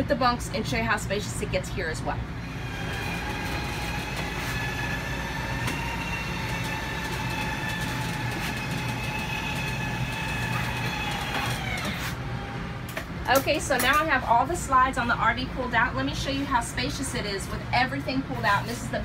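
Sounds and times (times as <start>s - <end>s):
electric motor whining: 2.4s - 12.2s.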